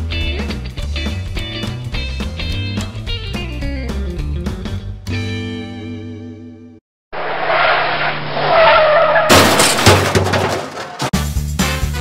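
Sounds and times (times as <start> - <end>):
loud crash: 7.2 - 11.1.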